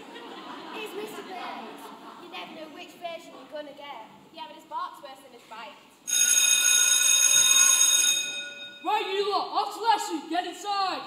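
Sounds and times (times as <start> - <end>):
electric school bell ringing: 6.1 - 9.0.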